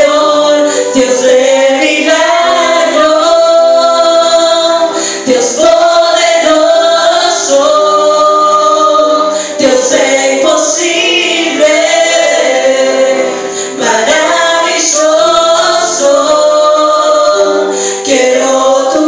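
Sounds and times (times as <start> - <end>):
voices singing along: 0.0 - 19.0
woman singing into a microphone: 0.0 - 19.0.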